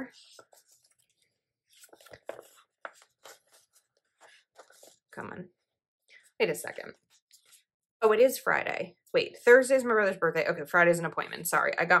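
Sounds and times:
paper rustling and scraping: 0.0s - 5.2s, 6.7s - 7.7s.

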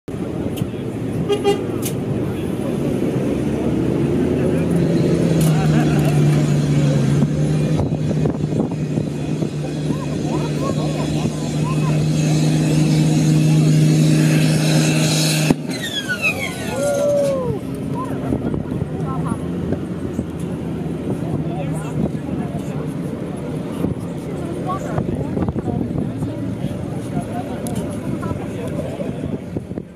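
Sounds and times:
tractor diesel engine at high revs: 0.2s - 16.8s
falling whines: 10.0s - 17.8s.

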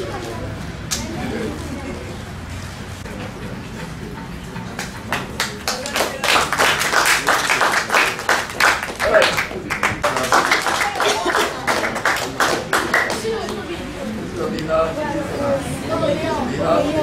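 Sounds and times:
people clapping: 4.6s - 13.8s.

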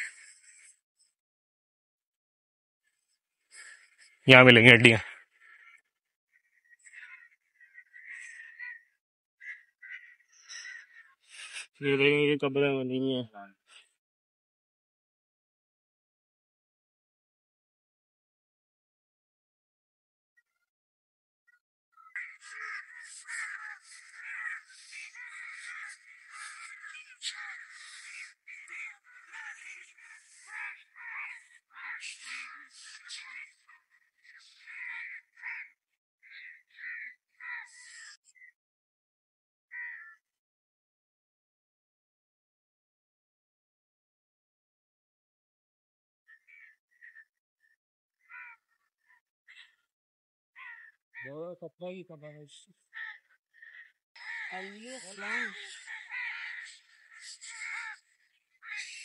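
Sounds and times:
crows cawing: 0.0s - 0.8s, 3.5s - 11.7s, 21.9s - 38.5s, 39.7s - 40.2s, 46.3s - 49.9s, 50.6s - 51.4s, 52.8s - 59.0s
faint bird calls: 0.0s - 1.1s, 2.9s - 11.8s, 21.5s - 38.6s, 46.3s - 49.9s, 50.6s - 51.4s, 52.4s - 59.0s.

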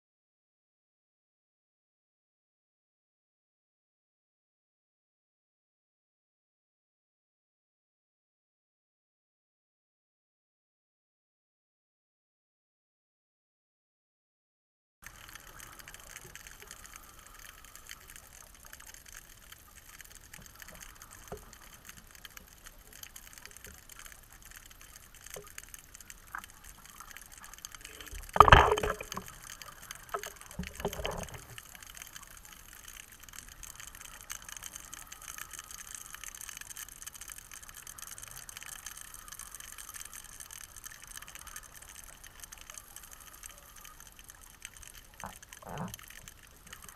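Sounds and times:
faint underwater hiss: 15.0s - 46.9s
gush of bubbles: 27.8s - 32.1s.

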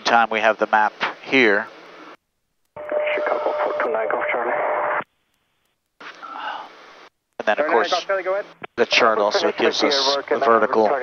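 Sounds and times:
radio voice transmission: 2.8s - 5.0s, 7.4s - 11.0s
steady radio tone: 2.8s - 5.0s, 7.4s - 11.0s.

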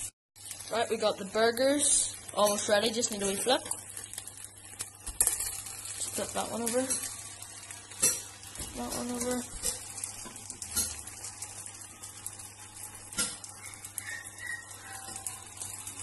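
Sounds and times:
patties sizzling in a frying pan: 0.0s - 16.0s.

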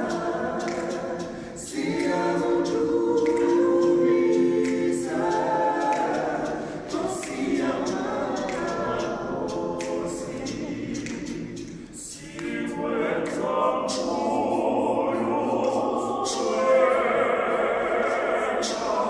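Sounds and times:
male vocal group singing a cappella: 0.0s - 19.0s.

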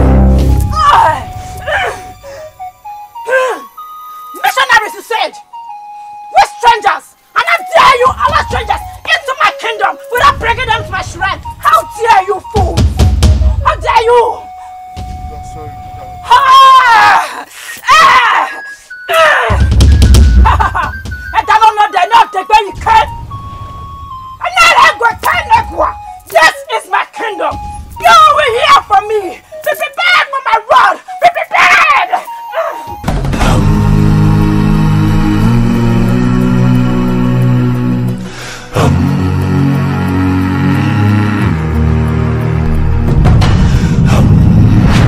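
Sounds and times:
sustained electronic keyboard notes: 0.0s - 16.4s, 18.6s - 43.3s
film music of held tones: 0.0s - 45.0s
voice crying out in a chant: 0.7s - 2.0s, 16.3s - 19.7s
person speaking: 6.4s - 13.0s, 20.5s - 23.2s, 24.4s - 33.8s
low rumble: 41.6s - 45.0s.

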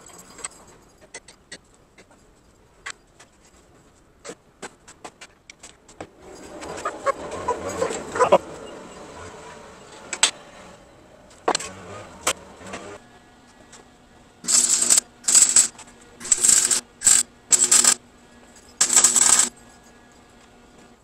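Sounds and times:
arc welding crackling bursts: 14.4s - 18.0s, 18.8s - 19.5s.

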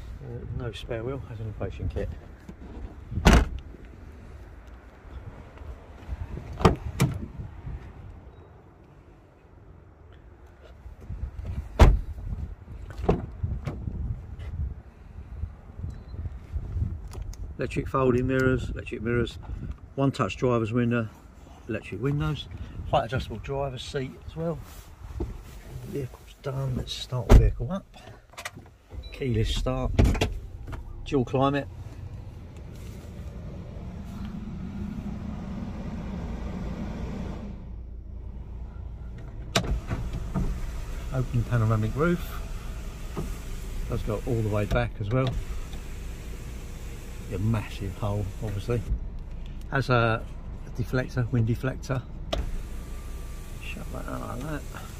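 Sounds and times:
car door shutting thump: 3.1s - 3.6s, 11.8s - 12.1s
low rumble: 29.2s - 41.0s
car engine idling: 29.6s - 54.9s.

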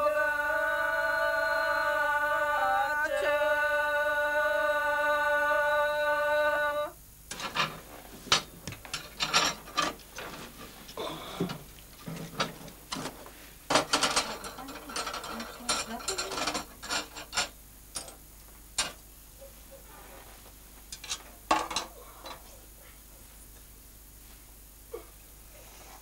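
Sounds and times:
metal wood stove clinks and scraping: 7.3s - 10.6s, 13.7s - 17.5s.

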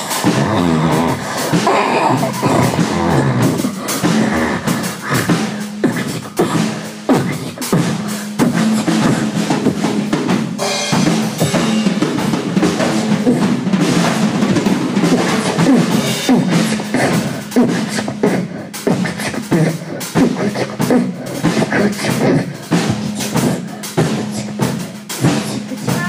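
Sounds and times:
boy beatboxing: 0.0s - 26.0s
drum kit playing a beat: 0.0s - 26.0s.

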